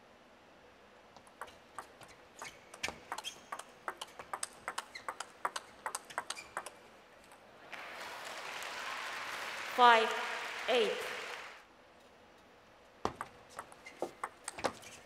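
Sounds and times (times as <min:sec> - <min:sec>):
ping pong ball clicking: 0:02.8 - 0:06.8, 0:13.1 - 0:14.8.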